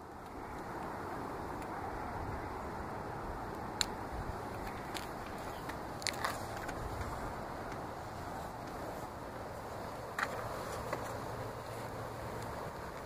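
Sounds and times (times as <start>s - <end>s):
flames hissing and crackling: 0.0s - 13.0s.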